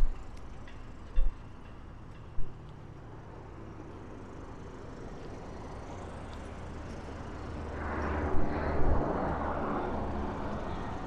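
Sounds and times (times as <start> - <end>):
vehicle passing by: 3.7 - 11.0.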